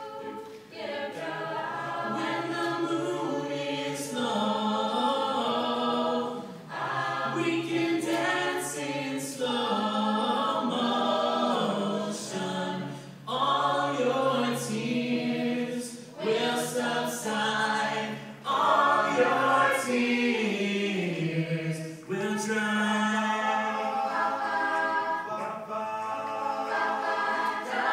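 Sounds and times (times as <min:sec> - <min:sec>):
a cappella chorus singing: 0:00.0 - 0:27.9.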